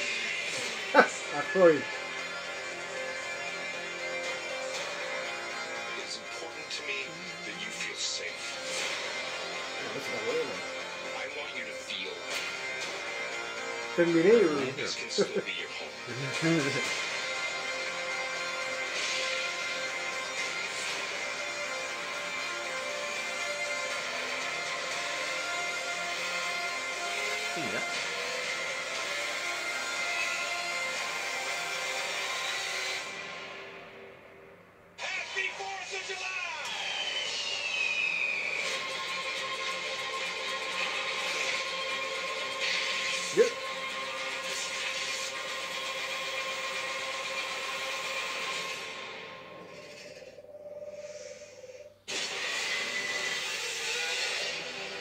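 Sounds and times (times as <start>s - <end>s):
trailer music with held notes: 0.0s - 55.0s.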